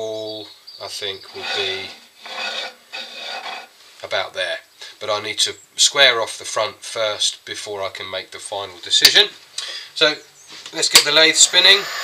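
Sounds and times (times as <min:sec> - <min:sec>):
pencil scratching on wood: 0:01.4 - 0:03.7.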